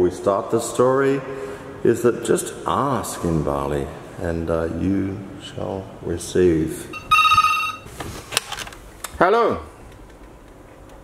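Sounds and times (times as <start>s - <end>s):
electronic telephone ring: 6.9s - 7.9s.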